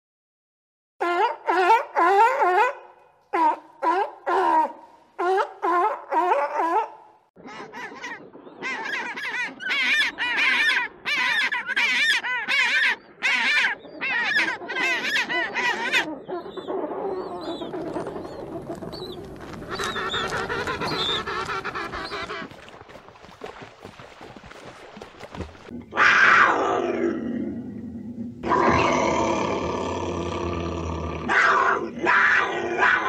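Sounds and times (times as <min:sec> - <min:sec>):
penguins calling: 0:19.3 - 0:22.5.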